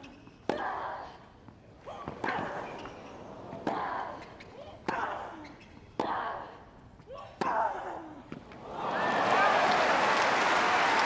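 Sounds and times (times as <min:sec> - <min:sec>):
crowd cheering and applauding: 0:08.6 - 0:11.0.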